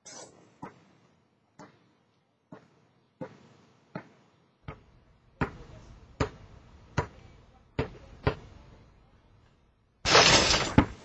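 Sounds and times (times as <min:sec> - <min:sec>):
basketball rattling through hoop net: 0:10.1 - 0:11.0.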